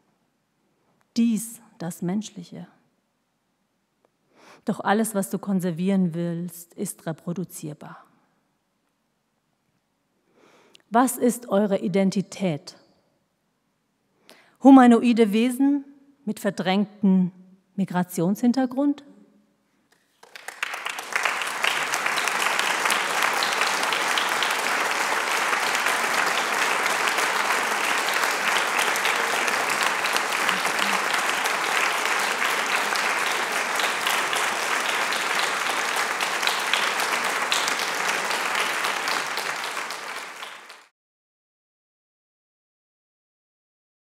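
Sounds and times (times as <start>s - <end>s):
audience applauding: 20.1s - 40.9s.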